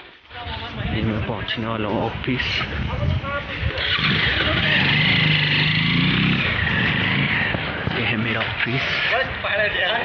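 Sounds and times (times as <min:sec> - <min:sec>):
vehicle driving past: 0:03.8 - 0:09.1.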